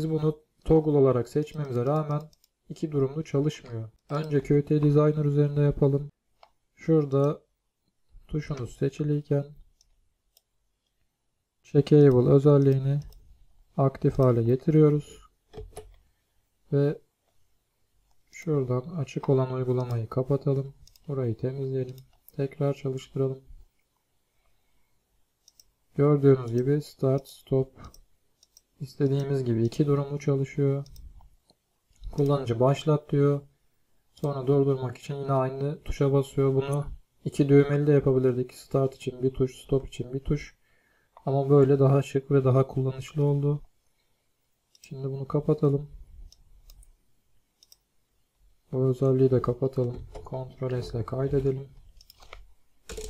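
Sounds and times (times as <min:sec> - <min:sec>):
computer mouse clicks: 0:01.3 - 0:02.8, 0:03.9 - 0:05.0, 0:12.0 - 0:13.3, 0:14.1 - 0:16.1, 0:19.1 - 0:21.2, 0:21.8 - 0:22.5, 0:25.4 - 0:25.8, 0:26.4 - 0:29.9, 0:30.8 - 0:32.4, 0:46.2 - 0:47.0, 0:47.6 - 0:47.9, 0:51.3 - 0:53.0
faint computer mouse clicks: 0:25.4 - 0:25.7, 0:26.4 - 0:29.2, 0:30.8 - 0:32.4, 0:46.2 - 0:47.0, 0:47.6 - 0:47.9, 0:51.9 - 0:53.0.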